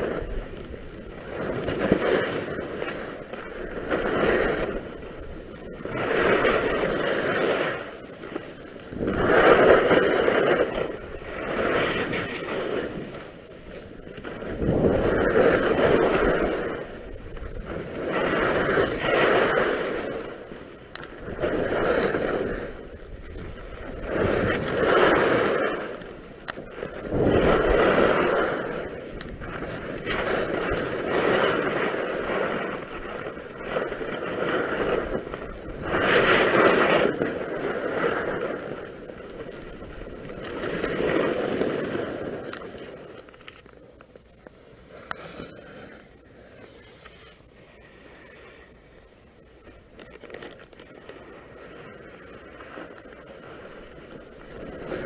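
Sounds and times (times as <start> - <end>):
skis scraping over packed snow: 0.0 - 55.0.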